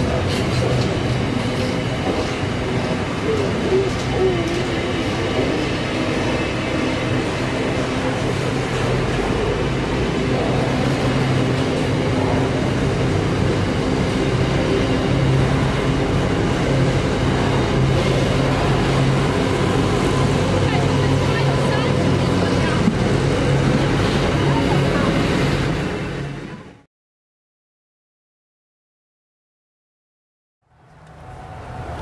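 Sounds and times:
train wheels rumbling on rails: 0.0s - 26.8s.

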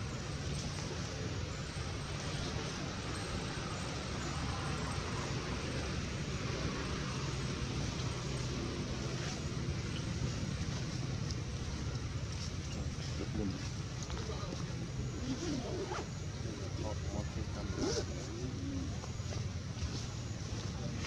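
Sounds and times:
low rumbling background noise: 0.0s - 21.0s.

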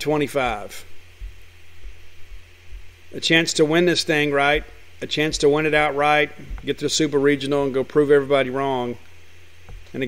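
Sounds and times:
soft low thumps: 0.0s - 7.1s, 9.6s - 9.9s
low electrical hum: 0.0s - 10.0s.

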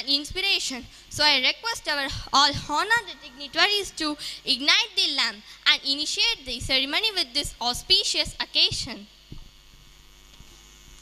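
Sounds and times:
sound system hum and hiss: 0.0s - 11.0s.

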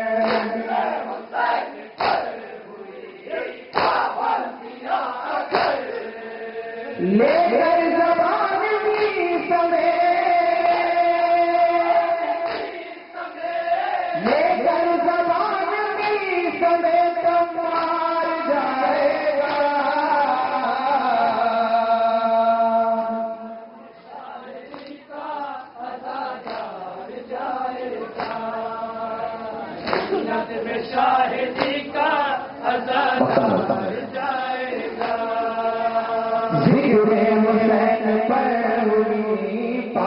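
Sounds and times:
man singing through a microphone: 0.0s - 1.1s, 5.4s - 40.0s
men's voices chanting: 0.0s - 23.0s, 24.1s - 38.8s
hand slaps on chest: 0.2s - 0.6s, 2.0s - 2.3s, 3.7s - 4.1s, 5.5s - 5.8s, 12.4s - 12.8s, 26.4s - 26.7s, 28.2s - 28.4s, 29.8s - 30.2s.

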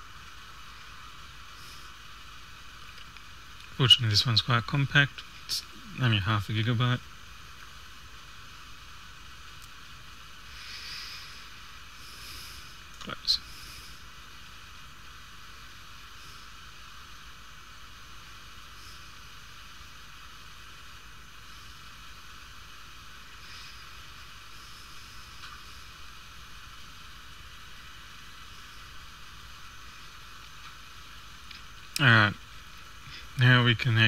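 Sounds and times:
faint hiss: 0.0s - 34.0s.

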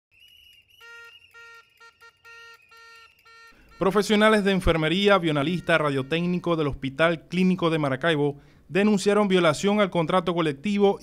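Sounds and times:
whistle blowing shrill note: 0.1s - 6.7s
plastic horn honking: 0.5s - 6.8s
man narrating: 3.8s - 11.0s.

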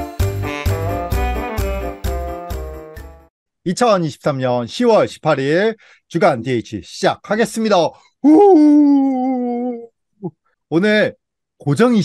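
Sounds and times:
man's long cheering call: 8.2s - 9.8s.

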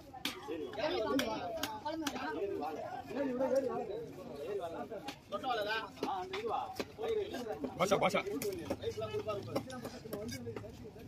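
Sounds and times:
people talking over one another: 0.0s - 11.0s.

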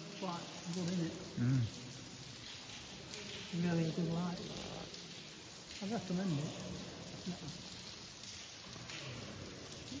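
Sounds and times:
water dripping and trickling: 0.0s - 10.0s.

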